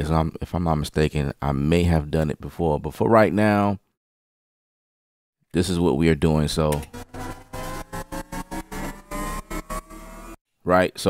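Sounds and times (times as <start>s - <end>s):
stuttering synth riser: 6.8s - 10.4s.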